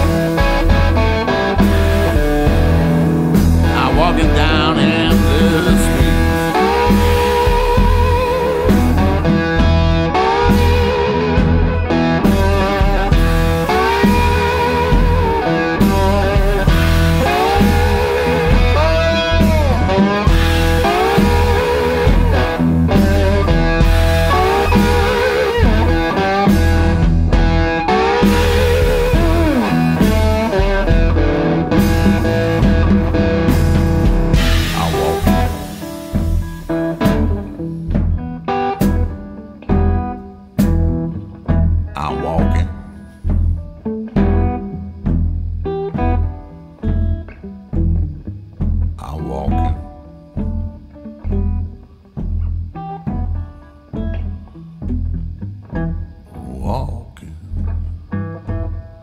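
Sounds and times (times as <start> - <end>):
bass notes: 0.0 - 27.7, 28.3 - 38.3, 40.8 - 45.6, 47.9 - 51.7, 54.3 - 59.0
drums: 0.0 - 59.0
electric guitar lead: 0.0 - 59.0
bass line: 2.5 - 8.1, 31.8 - 36.4, 41.6 - 43.8, 48.9 - 50.0, 56.0 - 58.7.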